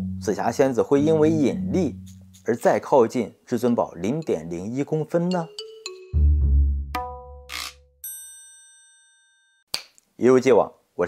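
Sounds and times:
bell-like ding: 7.0s - 9.7s.

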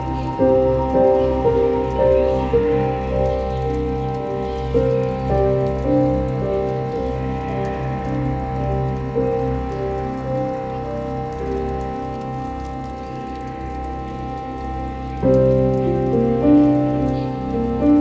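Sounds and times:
ambient music with low drone: 0.0s - 18.0s.

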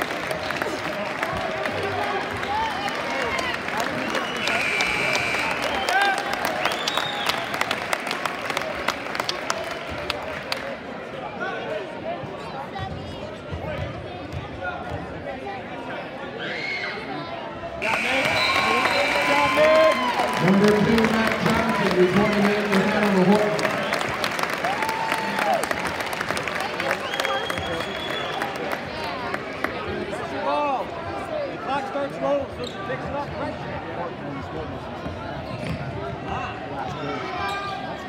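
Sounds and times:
crowd chatter and calls: 0.0s - 38.0s.

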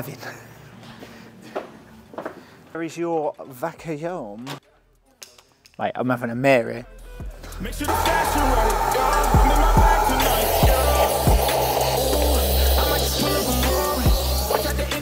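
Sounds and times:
hip hop beat: 7.2s - 15.0s.

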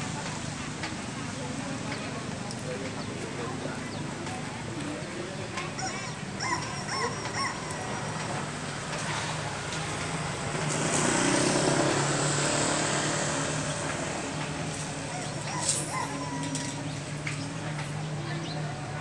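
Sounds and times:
car driving past: 10.4s - 14.5s.

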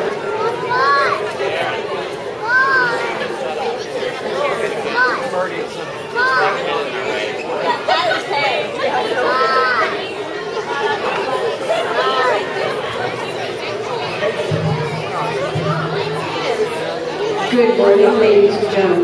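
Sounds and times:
crowd chattering in a hall: 0.0s - 19.0s.

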